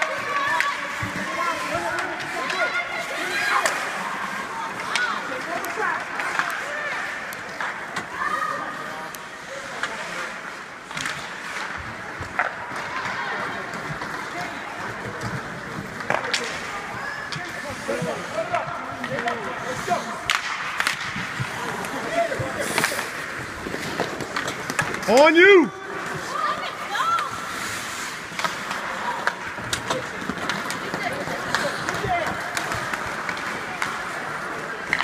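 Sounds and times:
crowd talking and calling out: 0.0s - 35.0s
hockey sticks clacking on puck: 0.0s - 35.0s.

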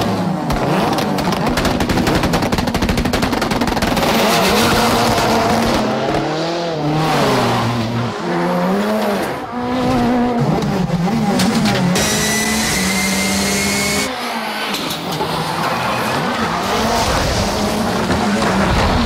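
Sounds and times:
car engine revving hard: 4.0s - 14.1s.

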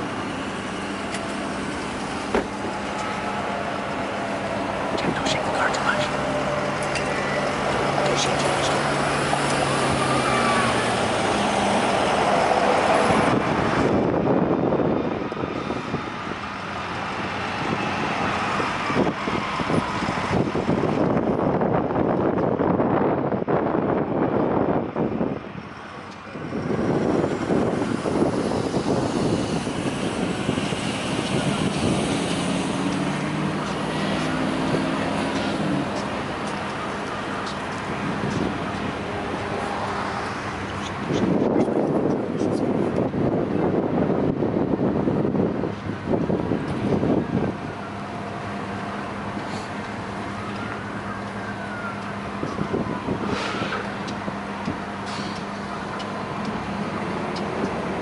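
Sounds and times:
locomotive engines humming: 0.0s - 22.4s, 25.6s - 58.0s
train rushing noise: 0.0s - 50.4s.

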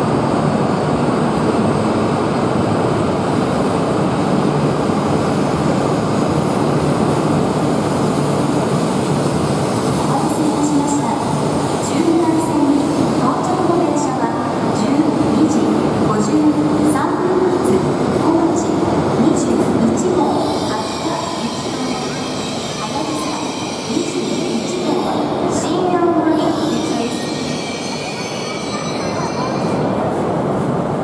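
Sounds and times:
trains running slowly: 0.0s - 31.0s
high-pitched train squeal: 20.3s - 25.6s, 26.4s - 30.0s.

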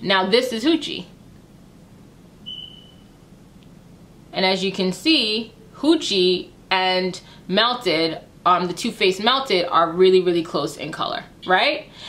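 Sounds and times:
thin high-pitched squeak: 2.5s - 3.2s.

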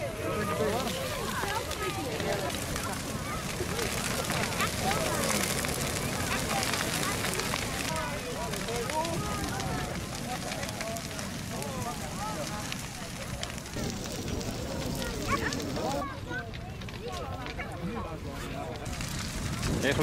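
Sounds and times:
people talking: 0.0s - 19.0s, 19.7s - 20.0s
bonfire crackling and popping: 0.0s - 20.0s
low fire rumble: 0.0s - 20.0s.

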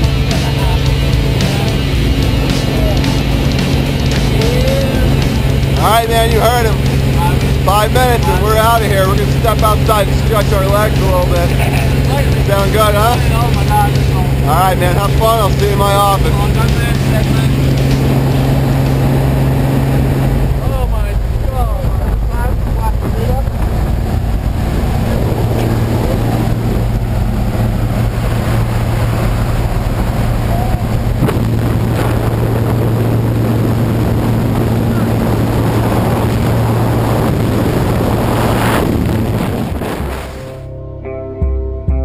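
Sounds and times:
propeller plane engine droning: 0.0s - 41.0s
wind rushing: 0.9s - 40.7s.

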